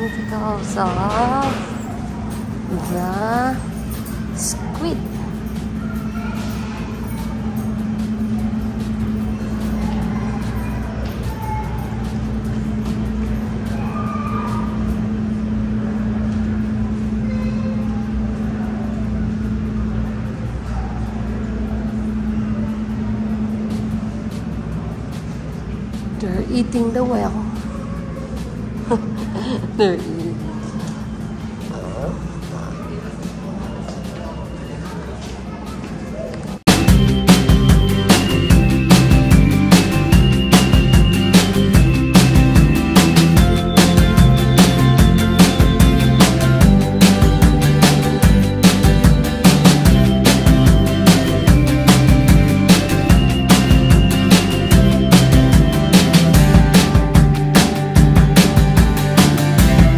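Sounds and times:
indistinct voices: 0.0s - 59.9s
steady low hum: 0.0s - 59.9s
faint distant voices: 27.2s - 36.7s.

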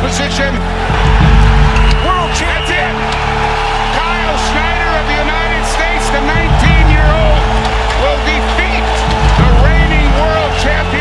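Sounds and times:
crowd shouting and cheering: 0.0s - 11.0s
soundtrack music with deep bass: 0.0s - 11.0s.

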